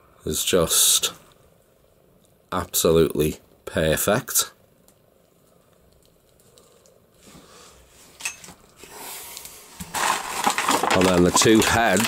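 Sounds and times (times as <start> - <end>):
plastic bag crinkling: 9.8 - 12.0.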